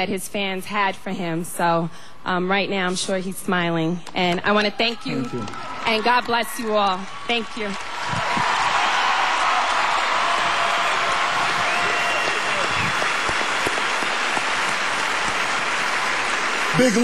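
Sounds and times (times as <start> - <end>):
audience applauding: 5.3 - 17.0.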